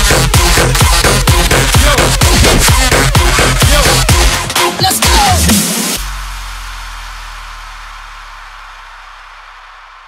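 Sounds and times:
low bass note: 2.2s - 3.1s.

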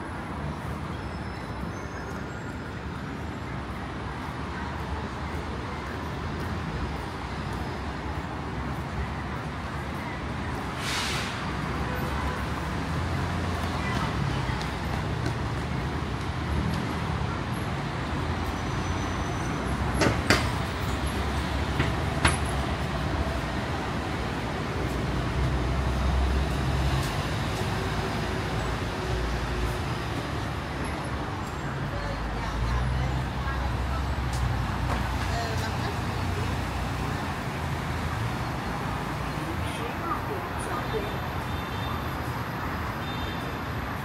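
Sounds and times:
buses and cars passing: 0.0s - 44.0s
road traffic hum: 0.0s - 44.0s
voices of passers-by: 0.0s - 44.0s.

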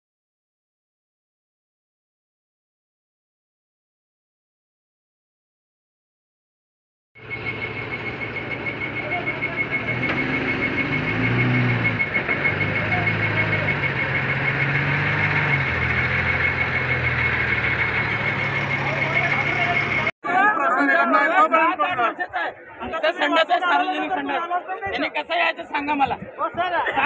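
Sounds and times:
high-pitched beeping alarm: 7.2s - 20.1s
truck engines revving: 7.2s - 20.1s.

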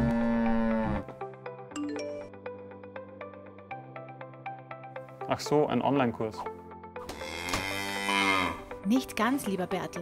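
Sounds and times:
cow mooing: 0.0s - 1.1s, 7.0s - 8.7s
background music: 0.0s - 10.0s.

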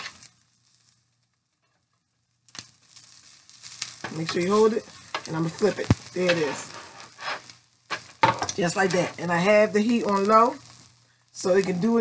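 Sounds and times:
egg sizzling in a pan: 0.0s - 1.1s, 2.4s - 12.0s.

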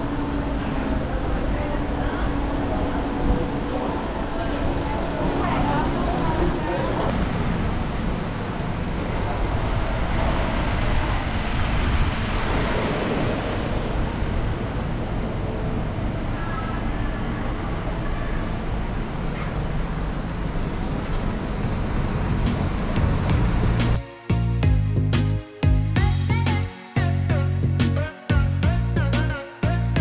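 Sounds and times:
wind on microphone: 0.0s - 17.7s
road traffic: 0.0s - 24.6s.

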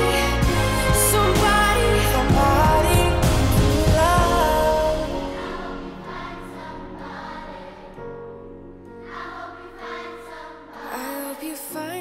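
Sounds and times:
music with held chords: 0.0s - 9.1s.

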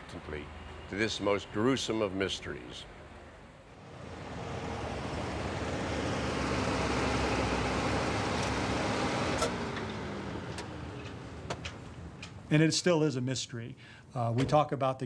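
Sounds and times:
vehicle passing by: 0.3s - 12.3s.

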